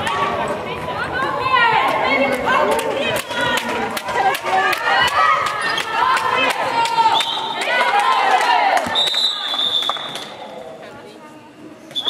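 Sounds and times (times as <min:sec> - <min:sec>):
referee's whistle: 0:08.9 - 0:10.3.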